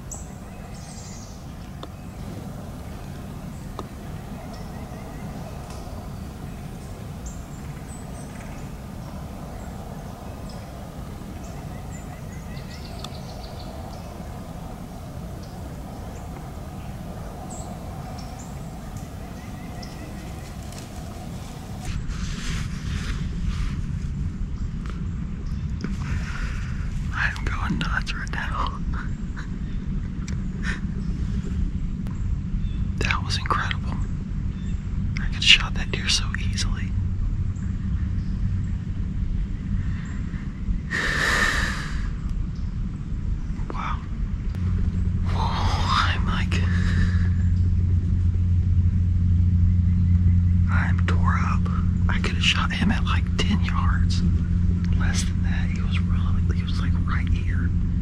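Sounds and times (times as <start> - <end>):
low rumble: 0.0 - 58.0
man whispering: 27.1 - 29.1, 33.0 - 34.0, 35.2 - 36.9, 43.7 - 44.1, 45.2 - 47.4, 50.6 - 54.3, 54.9 - 57.7.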